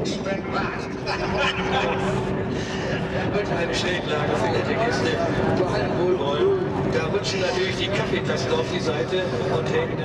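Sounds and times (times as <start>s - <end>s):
jet engines rumbling overhead: 0.0s - 10.0s.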